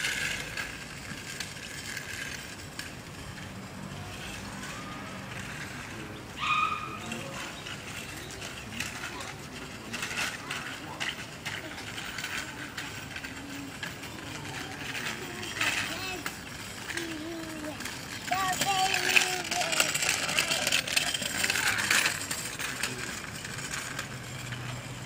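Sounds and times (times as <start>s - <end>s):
small bicycle rolling over paving: 0.0s - 25.0s
background voices: 3.9s - 24.8s.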